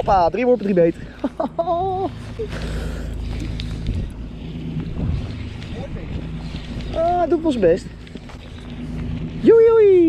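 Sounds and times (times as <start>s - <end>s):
steady low hum: 0.0s - 10.0s
wind rumbling on microphone: 0.0s - 10.0s.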